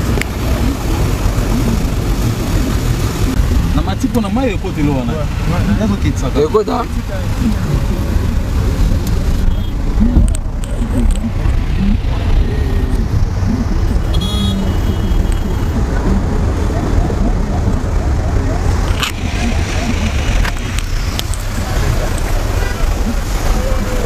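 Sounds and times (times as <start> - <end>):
indistinct voices: 0.0 - 24.0
street noise rumble: 0.0 - 24.0.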